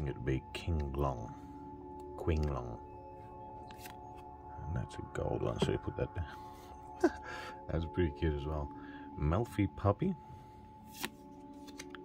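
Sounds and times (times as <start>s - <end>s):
trading card sliding: 3.7s - 4.0s, 10.9s - 12.0s
card flick: 10.9s - 12.0s.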